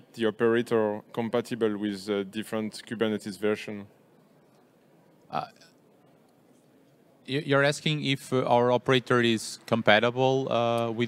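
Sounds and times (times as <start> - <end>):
man speaking into a microphone: 0.0 - 3.9, 7.2 - 11.0.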